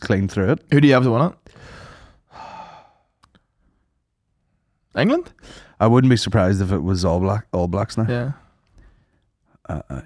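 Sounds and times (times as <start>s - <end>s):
man exhaling breathily: 1.5s - 3.2s.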